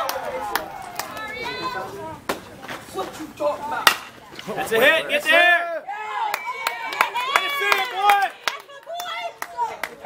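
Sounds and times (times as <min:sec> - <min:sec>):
spectators shouting and cheering: 0:00.0 - 0:02.3, 0:04.6 - 0:10.0.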